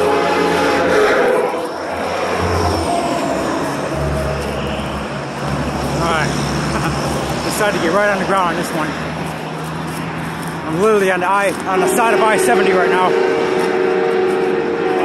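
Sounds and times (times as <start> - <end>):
horn blast: 0.0 - 5.4, 11.7 - 15.0
truck engine and tyre noise: 0.0 - 15.0
low engine rumble: 1.2 - 15.0.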